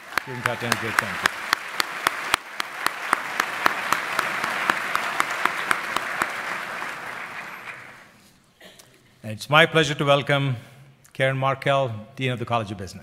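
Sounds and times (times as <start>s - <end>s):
sharp claps close to microphone: 0.0s - 8.1s
audience applauding: 0.0s - 8.2s.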